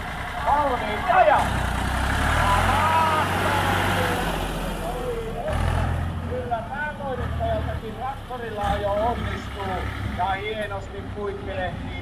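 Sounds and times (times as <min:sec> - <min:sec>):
tractor engine pulling away: 0:00.0 - 0:11.8.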